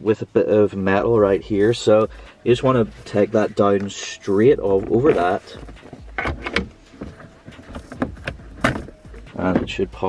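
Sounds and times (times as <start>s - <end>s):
plastic knocks and rustles: 4.8s - 9.8s.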